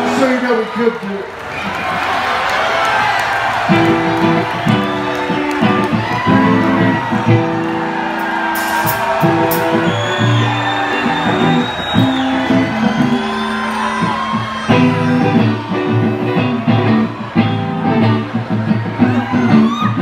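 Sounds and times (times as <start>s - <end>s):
rock band playing live: 3.5s - 20.0s.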